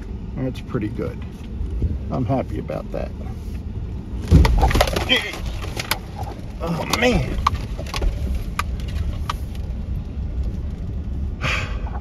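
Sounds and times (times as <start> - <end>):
low road rumble: 0.0 - 12.0
truck jolting over pothole: 4.2 - 9.3
rattling and clattering: 4.2 - 11.0.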